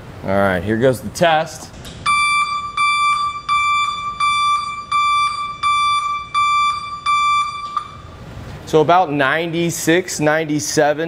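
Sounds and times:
back-up alarm beeping: 0:02.0 - 0:08.2.

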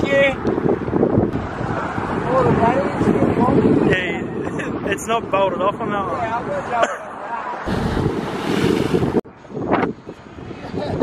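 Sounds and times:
wind buffeting microphone: 0:00.0 - 0:06.8, 0:07.7 - 0:11.0.

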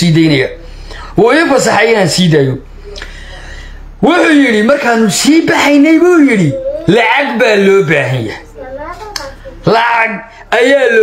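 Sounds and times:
man speaking: 0:00.0 - 0:00.6, 0:01.2 - 0:08.6, 0:09.6 - 0:11.0.

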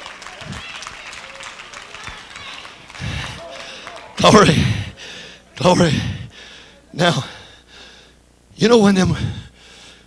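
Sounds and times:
congregation clapping: 0:00.0 - 0:06.2
voices calling out faintly: 0:00.0 - 0:10.0.

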